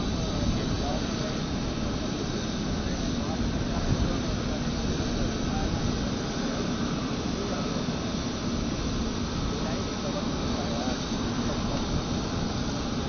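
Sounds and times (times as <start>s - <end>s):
jet aircraft noise: 0.0s - 13.0s
voices talking: 0.1s - 13.0s.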